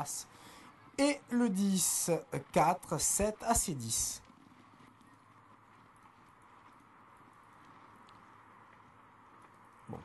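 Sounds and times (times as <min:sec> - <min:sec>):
faint horse hoofbeats: 0:00.0 - 0:10.0.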